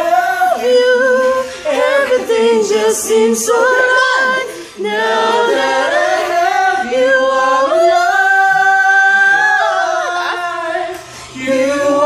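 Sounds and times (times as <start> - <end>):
person singing karaoke: 0.0 - 12.0.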